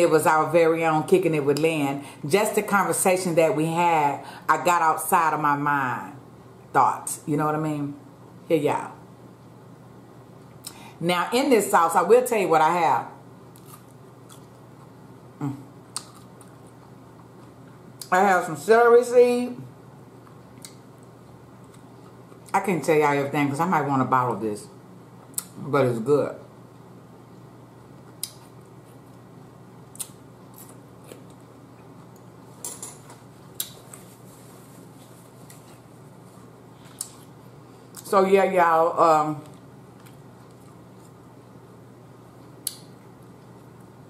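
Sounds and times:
steady room hum: 0:00.0 - 0:44.0
person chewing crunchy food: 0:13.5 - 0:15.0, 0:15.9 - 0:17.9, 0:29.9 - 0:32.4, 0:39.4 - 0:41.4
person chewing seafood: 0:13.6 - 0:14.9.

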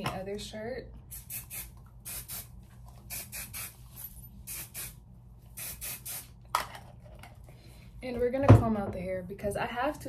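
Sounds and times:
aerosol spray hissing: 0:01.1 - 0:02.5, 0:03.1 - 0:03.8, 0:04.5 - 0:05.0, 0:05.6 - 0:06.3.

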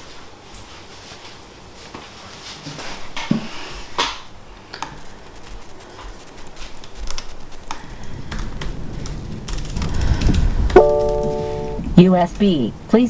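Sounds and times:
electronic chime: 0:10.8 - 0:11.8.

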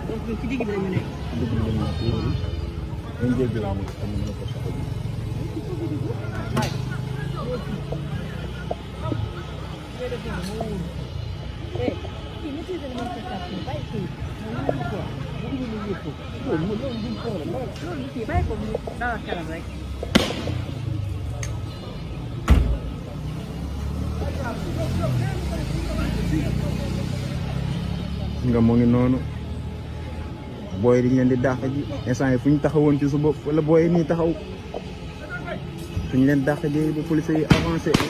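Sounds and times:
low street rumble: 0:00.0 - 0:38.0
vehicle engine hum: 0:00.0 - 0:38.0
voices: 0:00.0 - 0:38.0
people calling out: 0:04.5 - 0:20.9
sharp bang: 0:20.1 - 0:20.7.

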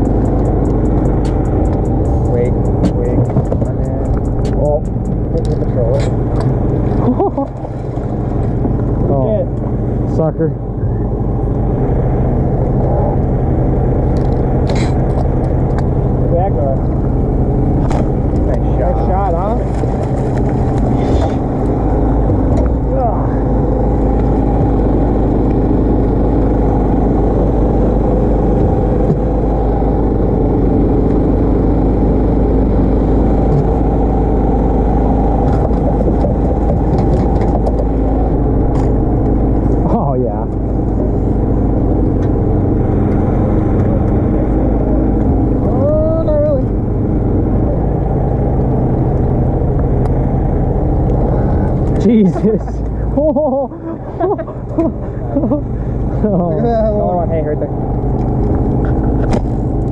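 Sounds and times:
small boat engine running: 0:00.0 - 0:59.9.

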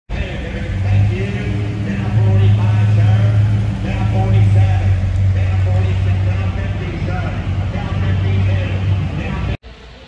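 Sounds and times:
car engine rumbling: 0:00.1 - 0:09.7
faint voices: 0:00.1 - 0:10.0.

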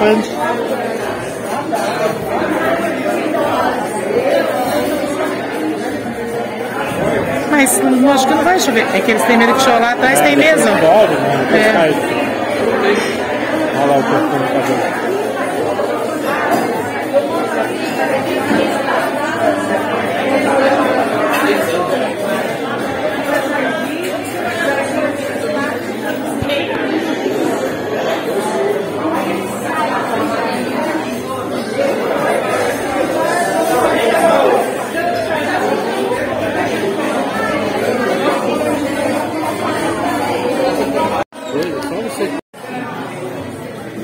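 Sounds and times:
diners chattering: 0:00.0 - 0:44.0
many people talking: 0:00.0 - 0:44.0.

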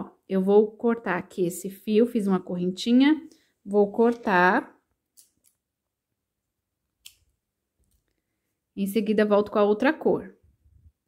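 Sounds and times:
scissors snipping string: 0:07.0 - 0:07.2.

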